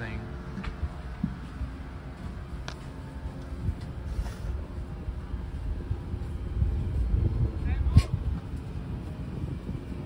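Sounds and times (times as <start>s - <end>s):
aircraft cabin rumble: 0.0s - 10.0s.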